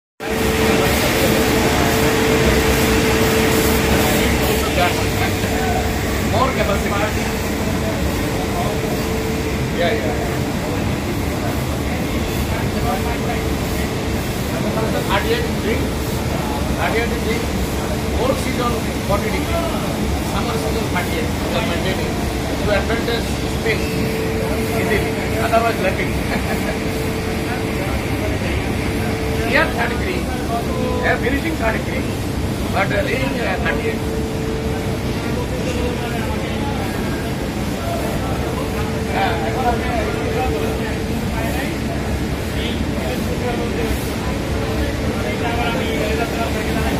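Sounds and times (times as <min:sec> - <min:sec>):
loud rushing noise: 0:00.2 - 0:46.9
men talking: 0:00.2 - 0:46.9
spinning mill machinery drone: 0:00.2 - 0:46.9
steady hum: 0:00.2 - 0:46.9.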